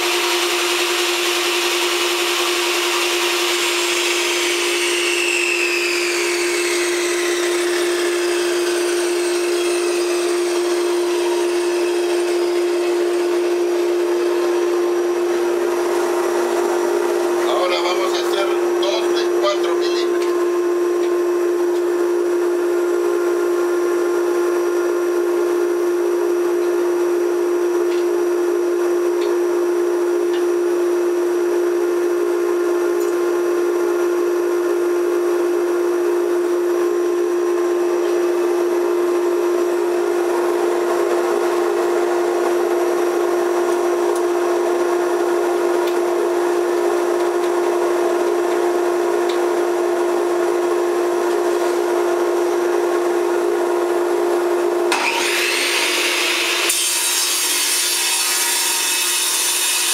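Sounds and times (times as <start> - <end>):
machine hum with whining tone: 0.0 - 59.9.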